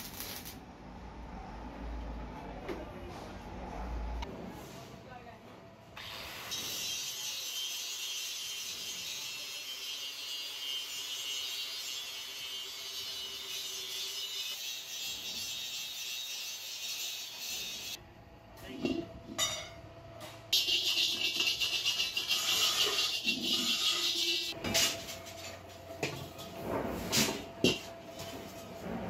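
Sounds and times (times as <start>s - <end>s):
angle grinder grinding metal: 20.6s - 24.6s.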